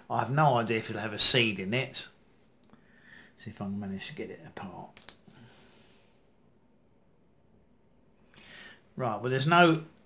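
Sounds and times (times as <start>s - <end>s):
breath out: 5.2s - 6.3s, 8.3s - 8.9s.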